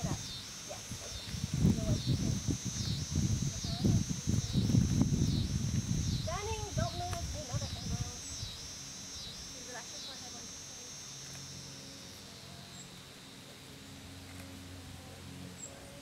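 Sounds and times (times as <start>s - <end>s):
low rumbling: 0.0s - 9.7s
high insect chorus pulsing: 0.0s - 16.0s.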